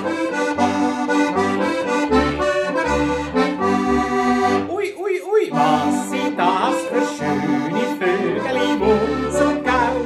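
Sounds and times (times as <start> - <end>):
accordion playing lively tune: 0.0 - 10.0.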